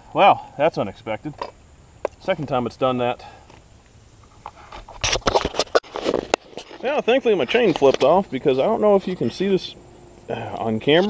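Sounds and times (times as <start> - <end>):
camera handling clicks and scrapes: 4.3 - 6.8.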